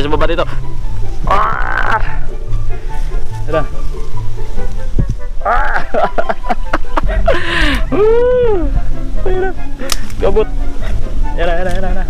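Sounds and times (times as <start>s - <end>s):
background music: 0.0s - 12.0s
sharp crack: 9.8s - 10.2s.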